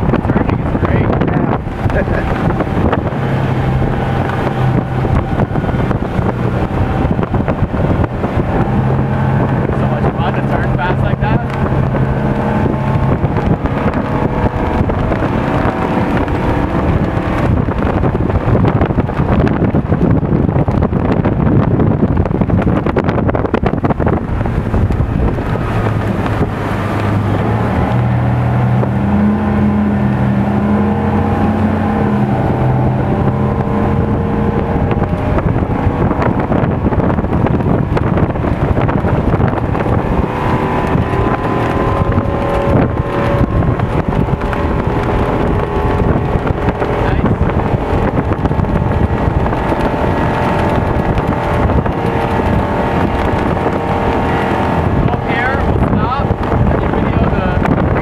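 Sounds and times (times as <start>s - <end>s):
boat engine droning: 0.0s - 58.0s
water rushing: 0.0s - 58.0s
wind buffeting microphone: 0.0s - 58.0s.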